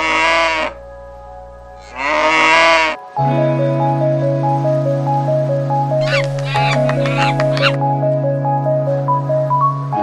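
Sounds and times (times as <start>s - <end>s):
cow mooing: 0.0s - 0.8s, 1.8s - 3.0s
music tune with steady notes: 0.2s - 10.0s.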